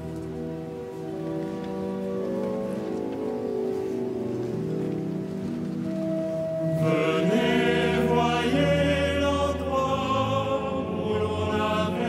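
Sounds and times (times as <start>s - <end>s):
organ chord: 0.0s - 12.0s
small choir chanting: 6.7s - 12.0s.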